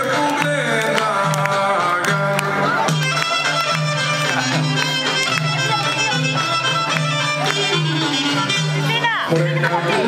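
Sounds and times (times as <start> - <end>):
instrumental folk dance music: 0.0 - 10.0.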